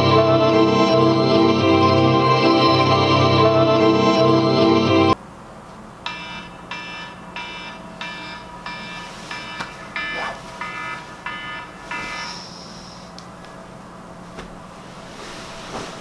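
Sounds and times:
smartphone alarm ringing: 0:06.1 - 0:13.1.

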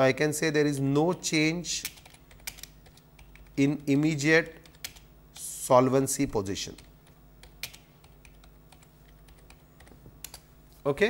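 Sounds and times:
faint low hum: 0:00.0 - 0:11.0
computer keyboard typing: 0:01.8 - 0:05.5, 0:06.6 - 0:10.5.

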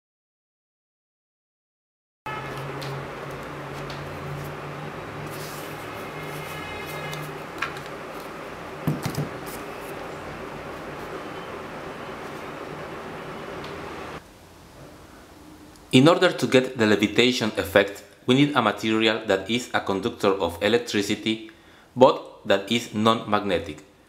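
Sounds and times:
steady hum and hiss: 0:02.3 - 0:24.0.

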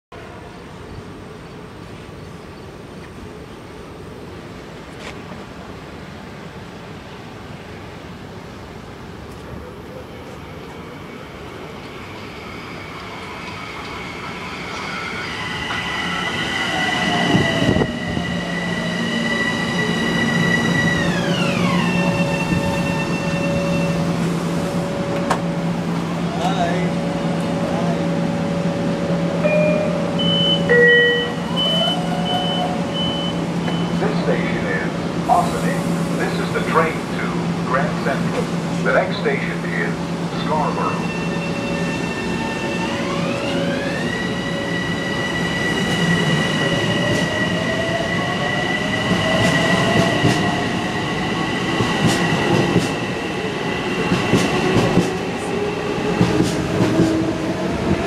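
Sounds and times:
steady train hum: 0:00.1 - 0:58.0
train braking to a stop: 0:10.3 - 0:25.5, 0:29.3 - 0:58.0.

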